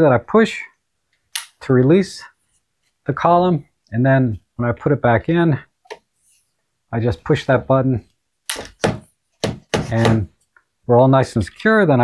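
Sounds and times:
tripod column knocks and clunks: 8.6s - 10.3s.

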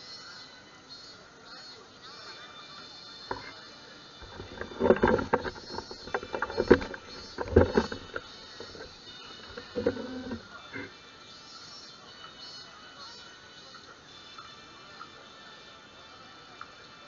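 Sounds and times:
faint steady background noise: 0.0s - 17.0s
camera handling bumps and rubbing: 4.2s - 10.4s.

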